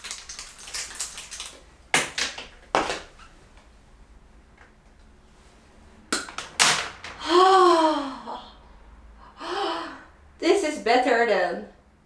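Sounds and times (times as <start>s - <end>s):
woman breathing sharply: 7.2s - 10.2s.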